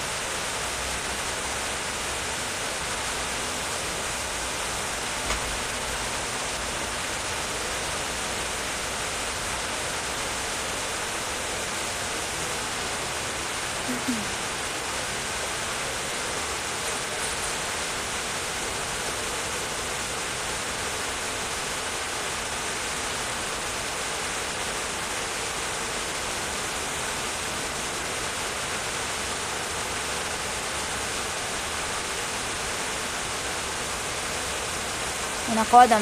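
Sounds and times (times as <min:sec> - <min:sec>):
steady hiss: 0:00.0 - 0:36.0.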